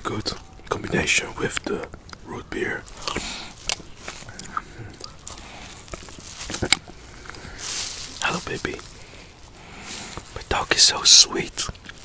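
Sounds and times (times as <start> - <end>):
mouth smacking and chewing: 0.2 - 8.2
sharp mouth clicks: 2.9 - 5.5.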